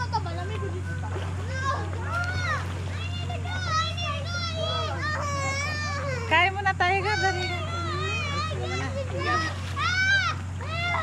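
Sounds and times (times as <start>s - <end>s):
steady low hum: 0.0s - 11.0s
children shrieking and calling out: 1.4s - 11.0s.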